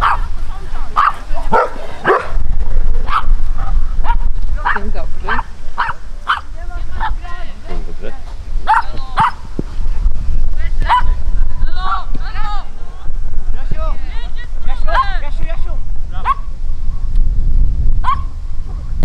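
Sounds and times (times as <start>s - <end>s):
dog barking: 0.0s - 0.3s, 1.0s - 2.4s, 3.0s - 7.2s, 8.7s - 9.4s, 10.8s - 11.2s, 16.2s - 16.5s, 18.0s - 18.4s
wind rumble on microphone: 0.0s - 19.0s.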